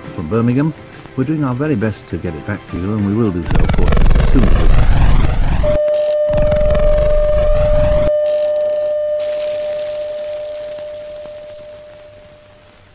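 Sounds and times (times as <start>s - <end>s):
static hiss: 3.3s - 12.9s
television test tone: 3.5s - 12.5s.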